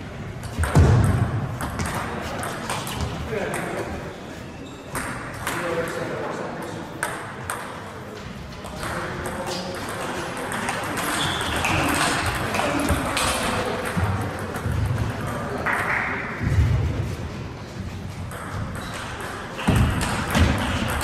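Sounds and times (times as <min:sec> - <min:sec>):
ball bouncing on table: 0:00.4 - 0:03.8, 0:18.3 - 0:21.0
people chattering: 0:01.6 - 0:21.0.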